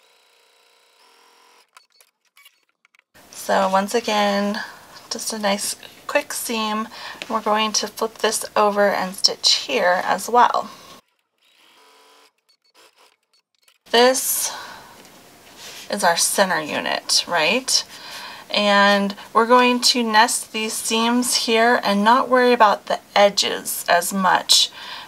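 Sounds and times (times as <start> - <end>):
small clicks: 1.6 - 3.1
woman speaking: 3.4 - 10.9, 13.9 - 15.0, 15.7 - 24.8.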